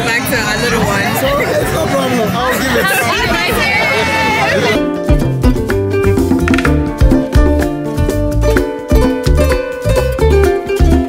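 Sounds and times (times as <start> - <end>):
crowd chatter: 0.0 - 5.1
music: 4.1 - 11.0.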